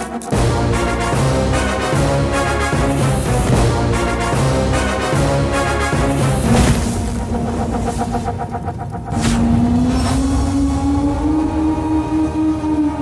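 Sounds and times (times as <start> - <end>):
low drone: 0.0 - 13.0
cinematic sound design: 2.7 - 13.0.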